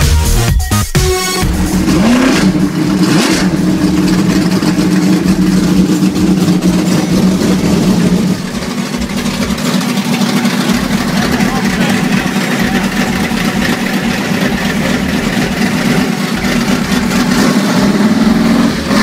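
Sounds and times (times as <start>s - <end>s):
engine rev: 1.4s - 19.0s
race car engine idling: 1.4s - 19.0s.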